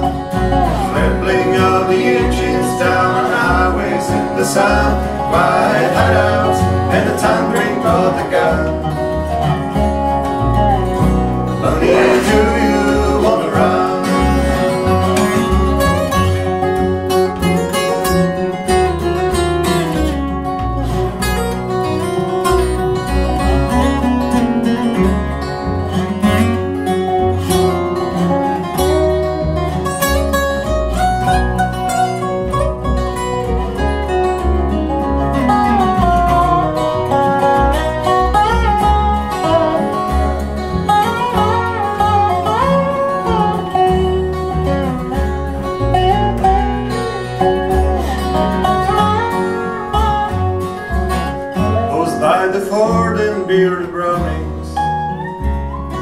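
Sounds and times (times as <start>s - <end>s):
acoustic guitars: 0.0s - 56.0s
dobro: 0.0s - 56.0s
upright bass walking: 0.0s - 56.0s.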